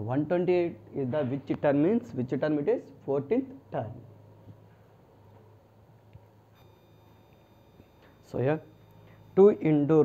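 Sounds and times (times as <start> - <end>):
faint low hum: 0.0 - 10.0
faint high whine: 6.5 - 10.0.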